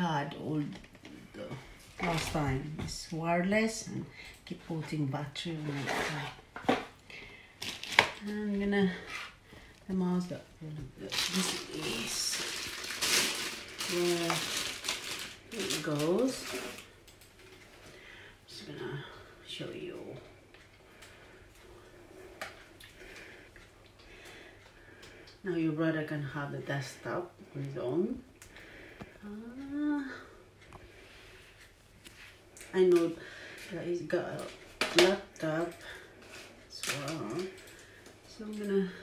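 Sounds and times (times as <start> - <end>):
plastic packaging crinkling: 7.6 - 8.3, 10.9 - 17.6.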